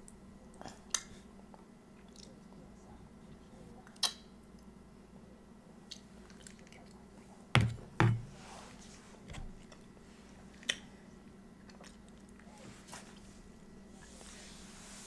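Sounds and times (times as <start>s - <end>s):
chewing food: 0.0s - 2.5s, 5.8s - 7.0s, 10.5s - 12.5s.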